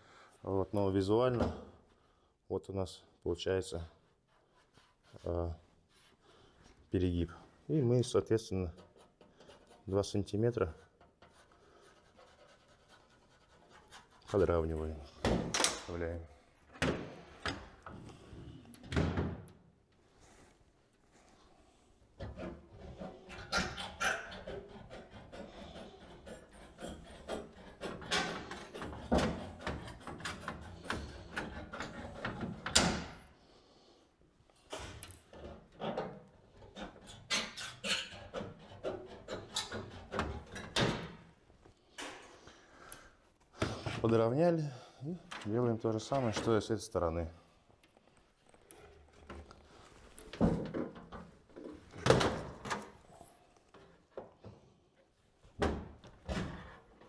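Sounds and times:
tool clanking and tapping on metal: 27.2s - 33.1s.

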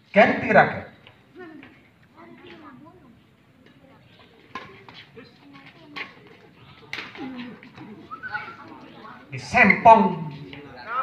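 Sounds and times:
spectators talking: 0.2s - 11.0s.

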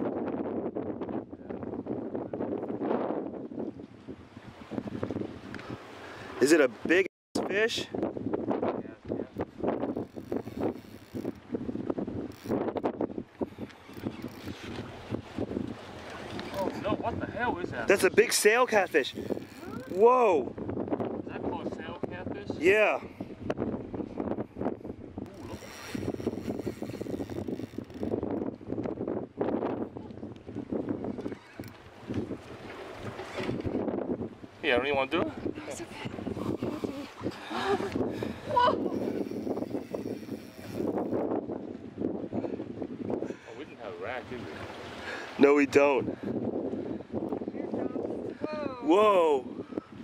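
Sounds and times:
wind on microphone: 0.0s - 50.0s.

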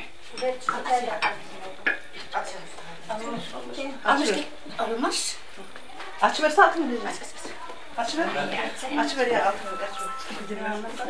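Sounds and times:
faint women's voices: 0.0s - 11.0s.

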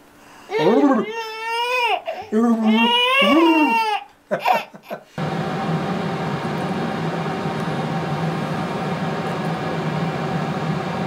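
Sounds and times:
baby squealing happily: 0.5s - 5.0s.

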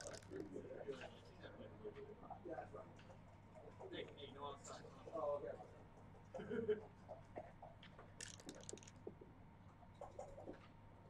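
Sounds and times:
dice rattling onto board: 0.0s - 0.4s, 8.2s - 9.1s
soft clicks of game pieces: 0.0s - 0.5s, 7.8s - 9.2s.

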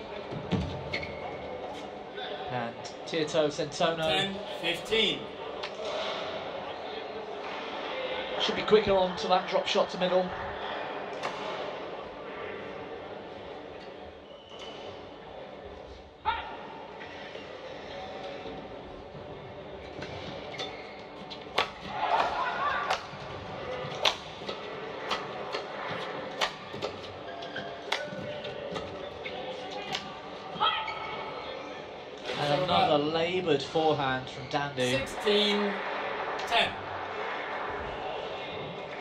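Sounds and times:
arena background noise: 0.0s - 39.0s.

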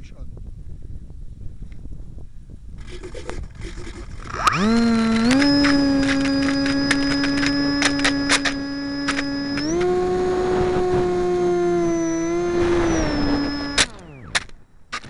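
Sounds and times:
sharp clicks: 2.8s - 10.1s, 10.8s - 15.0s
motor and propeller humming: 2.8s - 15.0s.

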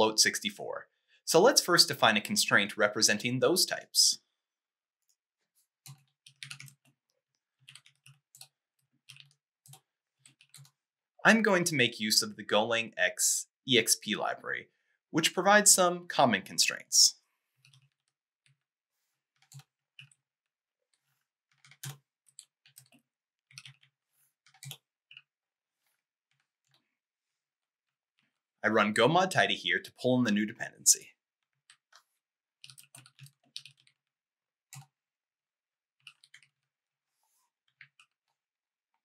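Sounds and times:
computer keyboard typing: 5.8s - 6.9s, 7.6s - 10.8s, 19.4s - 20.2s, 21.5s - 23.9s, 24.5s - 25.2s, 32.6s - 34.0s, 36.0s - 36.6s.

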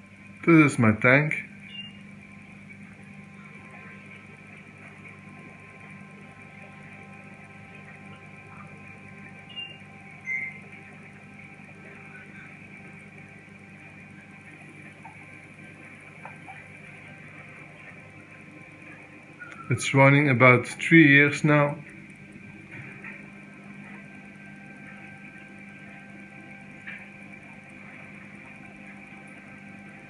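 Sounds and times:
aquarium pumps humming: 0.0s - 30.0s.

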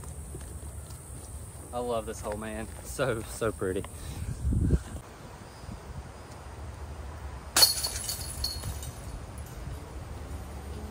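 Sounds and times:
disc hitting basket chains: 7.5s - 9.6s
chains jingling: 7.6s - 9.6s.

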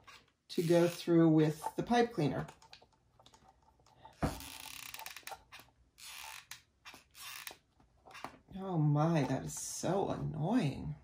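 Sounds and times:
glue gun creaking and scraping: 0.0s - 8.6s.

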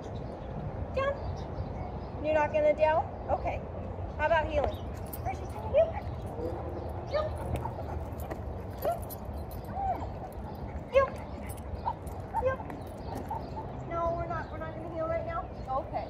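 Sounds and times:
scuffing footsteps: 7.1s - 13.8s.

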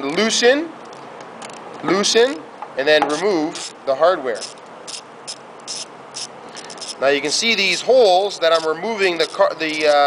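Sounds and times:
steady hiss: 1.9s - 10.0s.

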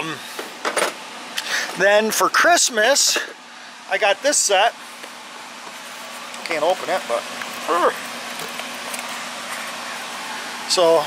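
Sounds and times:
furnace blowing hiss: 1.3s - 1.8s.

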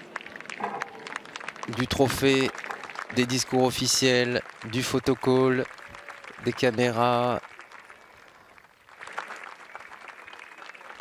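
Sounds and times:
faint spectator applause: 0.0s - 11.0s.

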